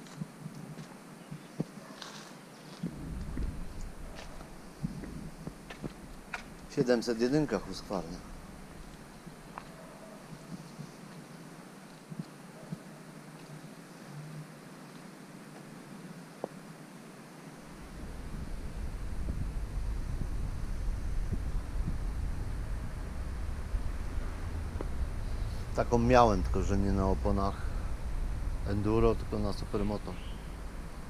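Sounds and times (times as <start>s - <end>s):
wind buffeting microphone: 2.8s - 10.9s, 17.6s - 31.0s.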